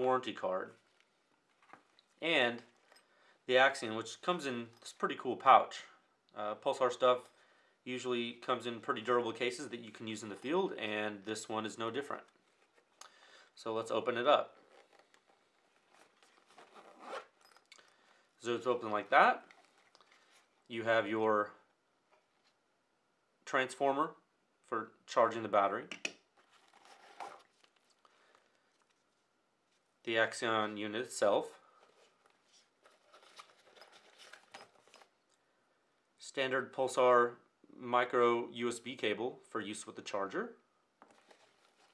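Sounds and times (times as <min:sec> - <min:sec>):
zipper being pulled open: 0:14.6 - 0:17.7
fabric pouch rustling and clicking: 0:14.6 - 0:17.9, 0:19.4 - 0:20.7, 0:31.8 - 0:35.2, 0:41.0 - 0:41.9.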